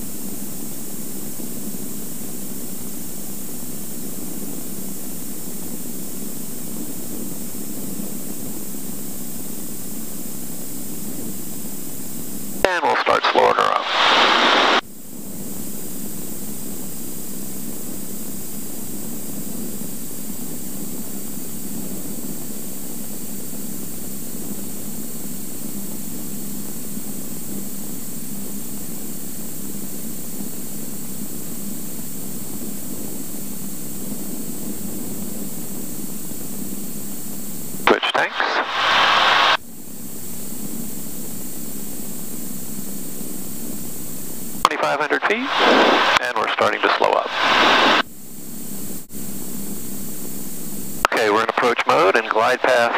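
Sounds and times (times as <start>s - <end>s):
aircraft cabin noise drone: 12.6s - 14.8s, 37.9s - 39.6s, 44.6s - 48.0s, 50.9s - 52.9s
radio voice transmission: 12.6s - 14.8s, 37.9s - 39.6s, 44.7s - 48.0s, 51.1s - 52.9s.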